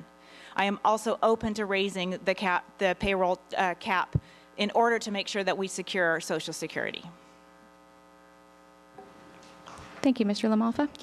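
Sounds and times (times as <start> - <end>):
faint mains hum: 0.0 - 11.0.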